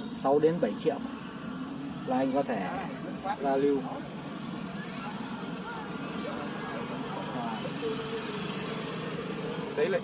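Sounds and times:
people chatting indistinctly: 0.0 - 10.0.

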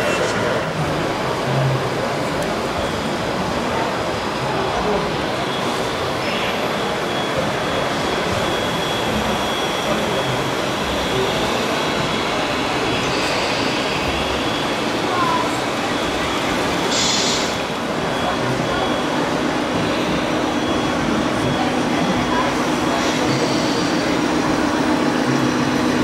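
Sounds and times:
indistinct voices: 0.0 - 26.0.

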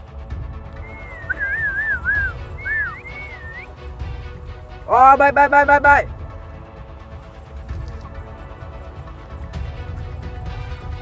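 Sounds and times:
person whistling warbling phrases: 0.8 - 3.6.

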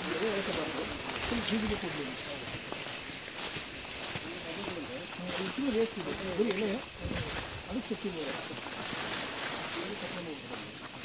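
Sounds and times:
people talking: 0.0 - 2.6, 4.2 - 8.6, 9.7 - 11.0
steady hiss: 0.0 - 11.0.

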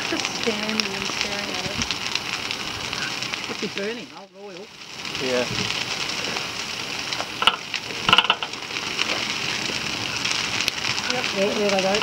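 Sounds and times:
brush fire crackling: 0.0 - 12.0
fire popping: 0.0 - 12.0.

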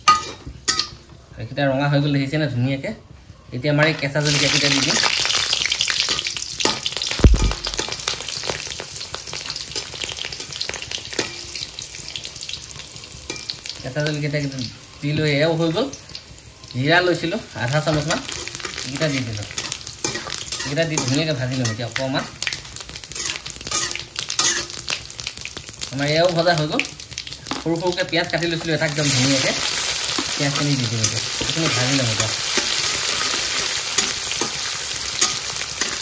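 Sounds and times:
chillies sizzling in hot oil: 3.8 - 36.0
metal spatula scraping pan: 17.9 - 21.8, 23.1 - 24.9.

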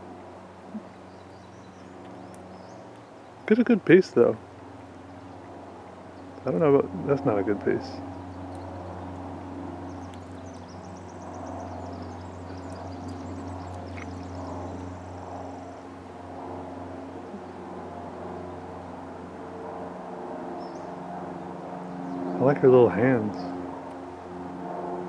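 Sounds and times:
low mechanical hum: 0.0 - 25.0
songbird trilling: 0.7 - 3.7, 9.8 - 15.9.

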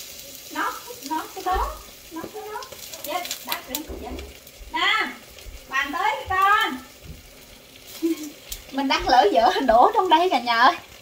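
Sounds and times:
lively overlapping talk: 0.6 - 10.8.

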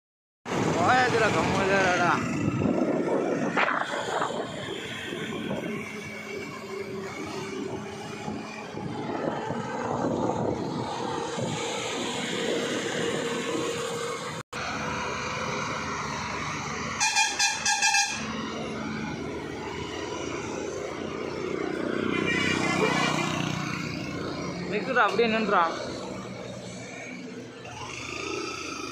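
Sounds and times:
vehicle engines and tyre noise: 0.4 - 28.9
vehicle horn toots: 16.9 - 18.4.

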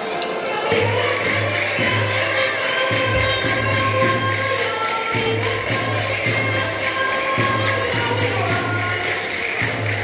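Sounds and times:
folk dance music: 0.0 - 10.0.

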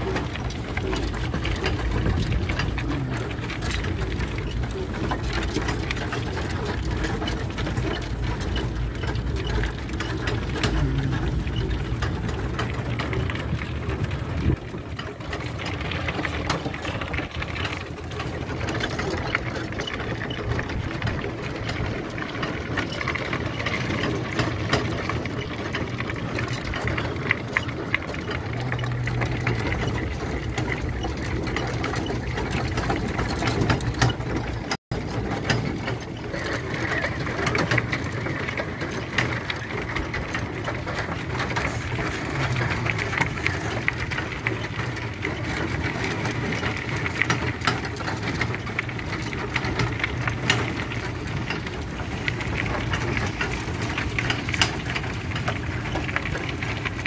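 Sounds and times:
electric trike whirr and rattle: 0.0 - 57.0
tyres crunching over gravel: 0.0 - 57.0
low hum: 6.9 - 14.6.

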